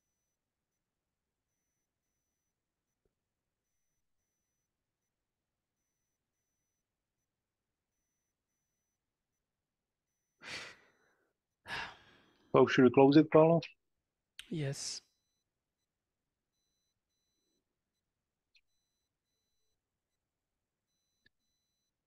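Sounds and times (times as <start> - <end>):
breath into a microphone: 10.4 - 12.4.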